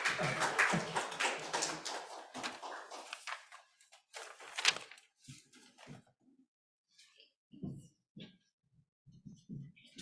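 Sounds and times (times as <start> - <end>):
audience applause: 0.0 - 3.5.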